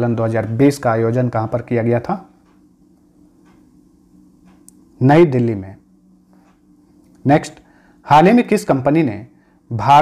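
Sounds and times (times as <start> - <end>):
steady low hum: 0.0 - 10.0
soft ticks: 2.4 - 3.7, 4.4 - 4.8, 6.3 - 7.2.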